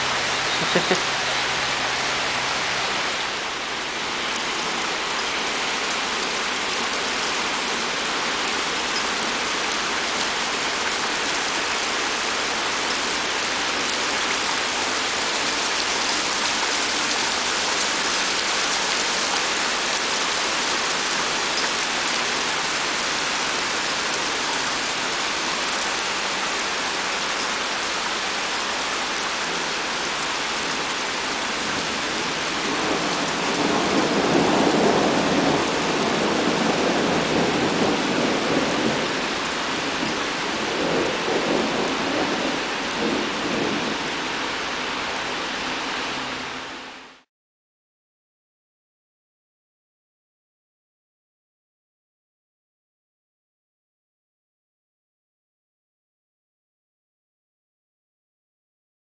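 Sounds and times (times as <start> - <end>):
heavy rain on river: 0.0 - 47.3
thunder rumbling: 31.3 - 44.4.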